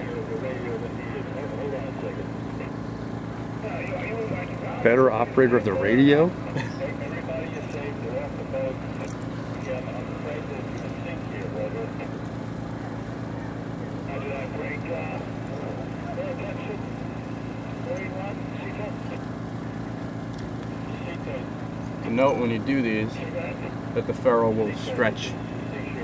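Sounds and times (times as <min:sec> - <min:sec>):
faint voices: 0:00.0 - 0:26.0
low engine drone: 0:00.0 - 0:26.0.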